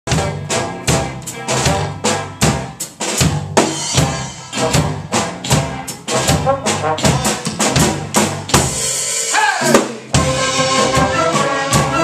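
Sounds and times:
upright bass: 0:00.1 - 0:08.9
band playing live: 0:00.1 - 0:12.0
drum kit beat: 0:00.1 - 0:12.0.

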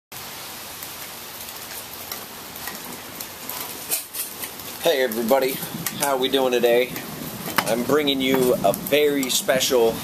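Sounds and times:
steady rainfall: 0:00.1 - 0:10.0.

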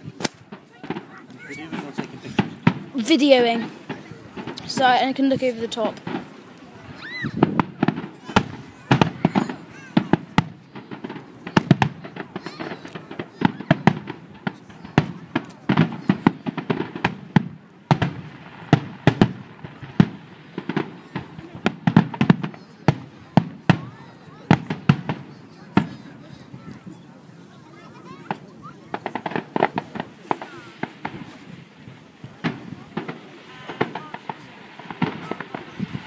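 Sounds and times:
firework shells bursting: 0:00.1 - 0:25.9, 0:28.3 - 0:36.0.

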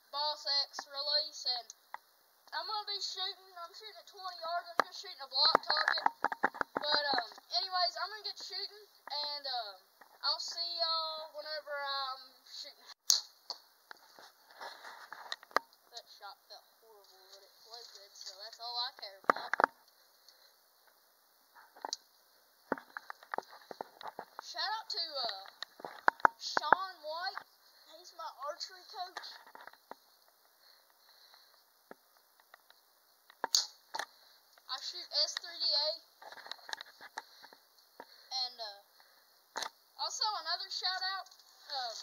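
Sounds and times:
voices talking: 0:02.5 - 0:06.2, 0:15.9 - 0:19.7, 0:26.4 - 0:29.4
sharp snap: 0:13.0 - 0:13.6, 0:33.4 - 0:34.1.

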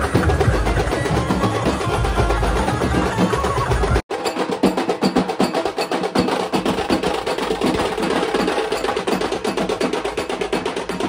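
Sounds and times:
drum roll: 0:00.0 - 0:11.0.

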